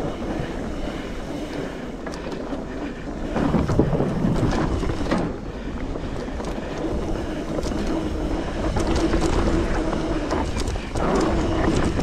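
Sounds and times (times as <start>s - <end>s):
bike clicks and rattles: 0.0s - 12.0s
tyres rolling over dirt: 0.0s - 12.0s
wind rushing over microphone: 0.0s - 12.0s.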